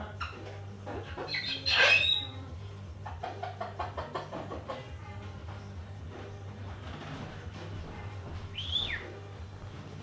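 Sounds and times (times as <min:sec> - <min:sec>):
cockatoo whistle: 0:08.6 - 0:09.1.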